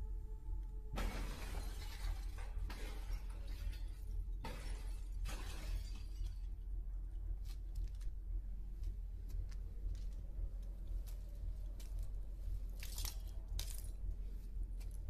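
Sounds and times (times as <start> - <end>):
low rumble: 0.0 - 15.0
glass shattering: 1.0 - 6.6.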